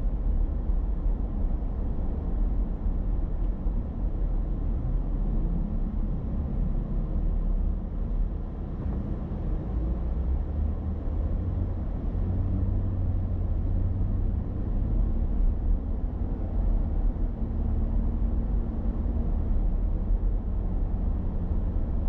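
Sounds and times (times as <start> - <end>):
car interior road rumble: 0.0 - 22.0.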